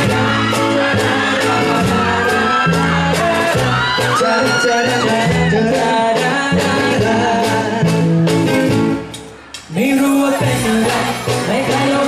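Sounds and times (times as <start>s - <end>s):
male vocals: 0.0s - 8.4s, 9.7s - 12.0s
acoustic guitar: 0.0s - 12.0s
bass: 0.0s - 12.0s
drums: 0.0s - 12.0s.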